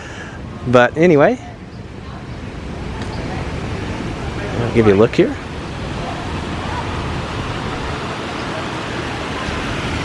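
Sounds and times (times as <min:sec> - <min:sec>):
city traffic: 0:00.0 - 0:10.0
fountain water rushing into pool: 0:02.1 - 0:10.0.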